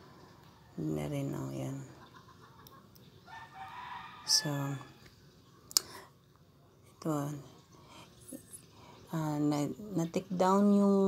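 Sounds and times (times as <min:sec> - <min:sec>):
distant rooster crowing: 0:03.3 - 0:05.0.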